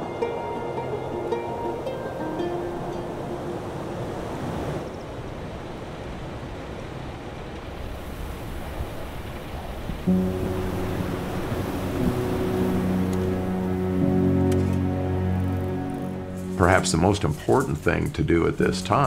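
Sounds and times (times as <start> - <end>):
music with sustained low notes: 0.0 - 3.9, 9.9 - 19.0
wind blowing: 0.0 - 19.0.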